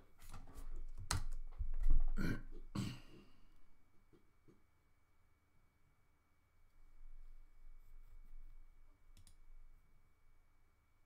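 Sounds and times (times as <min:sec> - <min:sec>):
keyboard and mouse clicks: 0:09.1 - 0:09.4.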